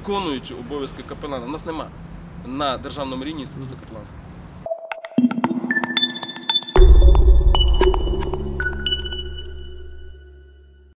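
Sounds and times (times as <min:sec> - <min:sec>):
high electronic pings: 0:04.7 - 0:10.6
low synth drone: 0:06.8 - 0:10.9.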